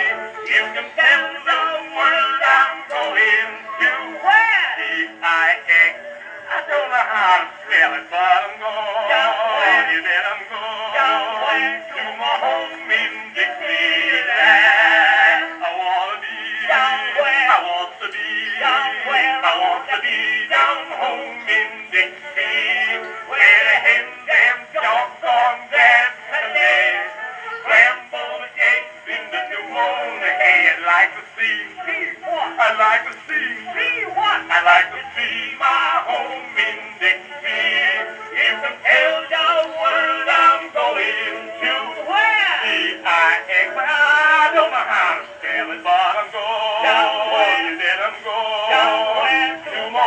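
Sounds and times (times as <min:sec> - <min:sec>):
early phonograph song recording: 0:00.0 - 0:50.0.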